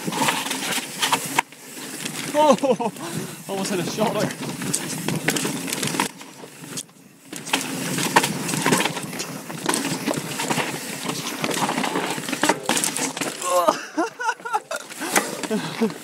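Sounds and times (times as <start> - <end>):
bike rattling clicks and knocks: 0.0 - 16.0
bike tyres crunching on stones: 0.0 - 16.0.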